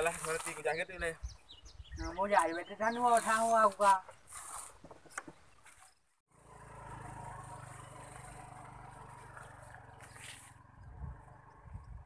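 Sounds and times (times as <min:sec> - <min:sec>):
motor scooter engine running: 0:06.3 - 0:12.0.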